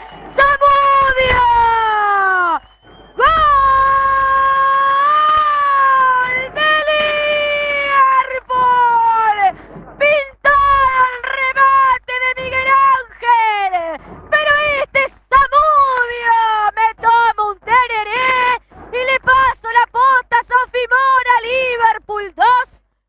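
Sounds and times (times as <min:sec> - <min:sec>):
woman commentator shouting goal: 0:00.0 - 0:02.6, 0:03.2 - 0:22.8.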